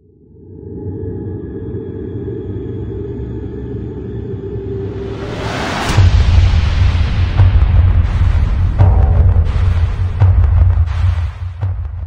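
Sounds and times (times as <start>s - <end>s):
low rumbling drone: 0.2s - 12.0s
rising whoosh: 4.8s - 8.8s
deep bass hit booming: 6.0s - 12.0s.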